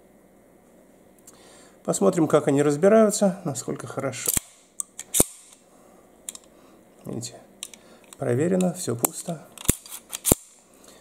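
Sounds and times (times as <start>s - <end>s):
pistol slide metallic clicks: 4.3s - 5.6s, 9.6s - 10.6s.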